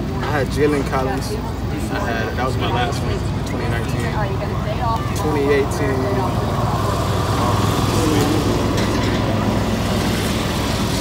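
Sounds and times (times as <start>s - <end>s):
faint voices: 0.0s - 11.0s
vehicle engine hum: 0.0s - 11.0s.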